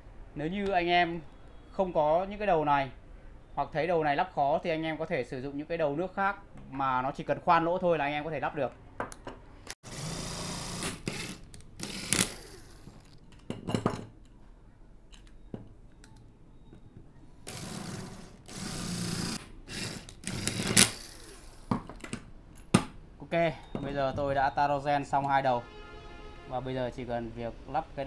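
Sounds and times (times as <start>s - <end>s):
cordless drill running: 9.8s - 13.0s, 17.5s - 21.7s.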